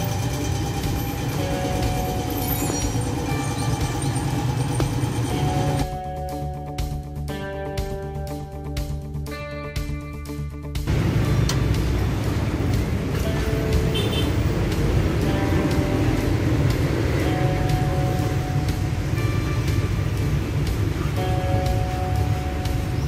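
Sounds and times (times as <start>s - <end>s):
background music: 0.0s - 23.0s.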